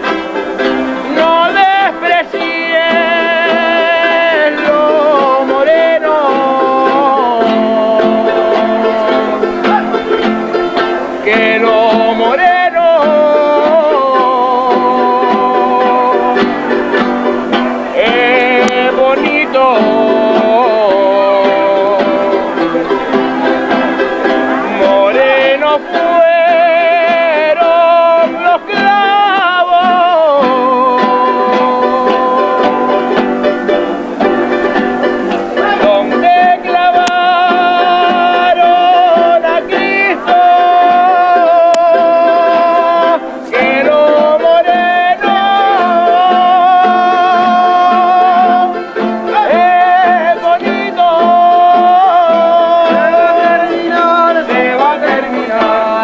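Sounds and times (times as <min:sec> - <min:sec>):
strummed and plucked guitars: 0:00.0 - 0:56.0.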